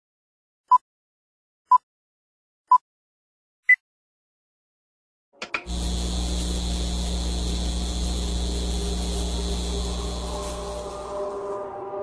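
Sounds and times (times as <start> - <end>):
clicks: 5.4 - 5.8
held tones: 5.4 - 11.5
mechanical whirring with deep hum: 5.4 - 11.6.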